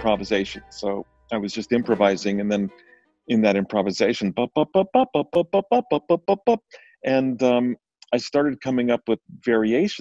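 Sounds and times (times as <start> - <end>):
quick staccato melody: 0.0 - 3.6.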